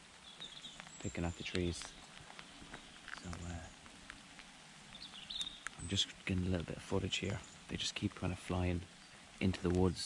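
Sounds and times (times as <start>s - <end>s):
light rain: 0.0s - 10.0s
raindrop ticks: 0.0s - 10.0s.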